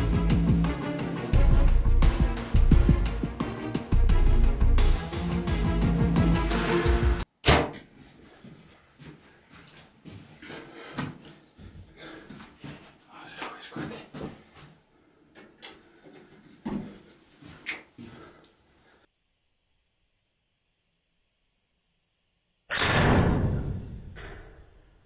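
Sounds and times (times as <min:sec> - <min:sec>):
background music: 0:00.0 - 0:07.3
person shuffling about: 0:07.9 - 0:14.9, 0:15.7 - 0:19.0.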